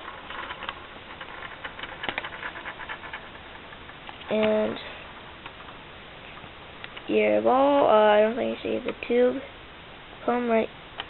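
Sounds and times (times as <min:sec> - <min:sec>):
ball rattling in plastic tracks: 0:00.0 - 0:05.8.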